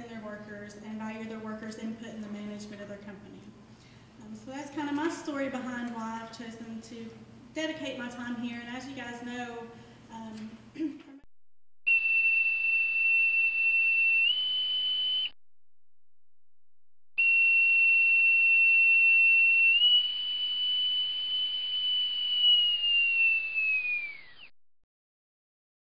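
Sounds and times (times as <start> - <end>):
high pure electronic tone: 11.9 - 15.4, 17.2 - 24.5.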